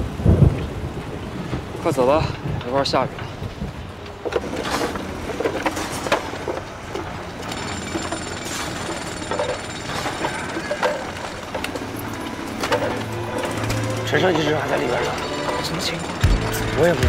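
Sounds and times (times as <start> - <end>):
construction site din: 1.4 - 17.0
shovels knocking against rubble: 4.3 - 16.9.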